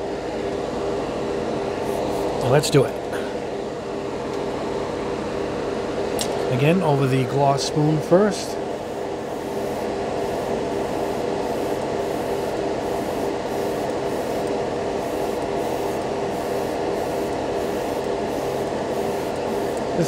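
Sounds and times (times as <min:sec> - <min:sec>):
extraction fan hum: 0:00.0 - 0:20.0
airbrush spraying hiss: 0:09.4 - 0:19.8.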